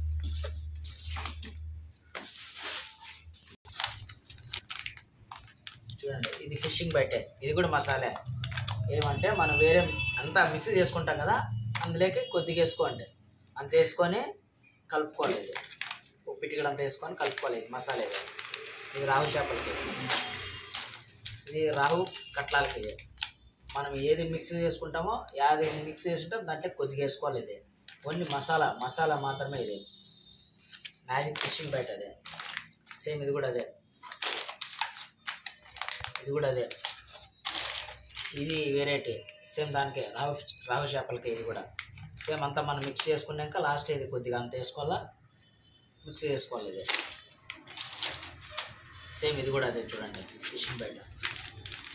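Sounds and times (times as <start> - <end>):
plastic bags crinkling: 0.1 - 9.9, 15.1 - 24.1, 27.8 - 29.7, 30.6 - 39.4, 41.3 - 43.6, 46.5 - 51.9
plastic crackling: 0.4 - 9.4, 15.2 - 24.0, 27.8 - 29.5, 30.4 - 39.4, 41.3 - 43.9, 46.5 - 51.9.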